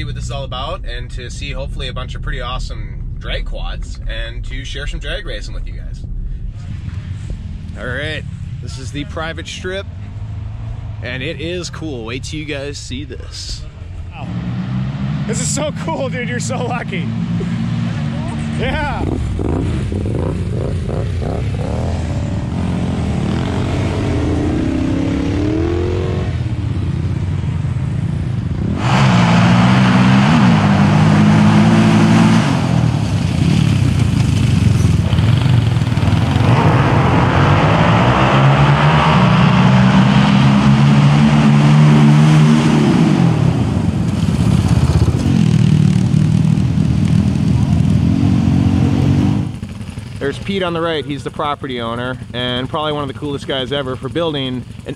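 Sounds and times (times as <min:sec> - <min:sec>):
quad engines revving and accelerating: 0:14.2 - 0:49.6.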